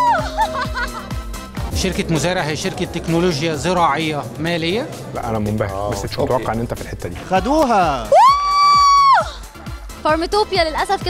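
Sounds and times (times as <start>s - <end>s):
music with fast ticking beat: 5.2s - 11.0s
high-pitched shriek of surprise: 8.1s - 9.4s.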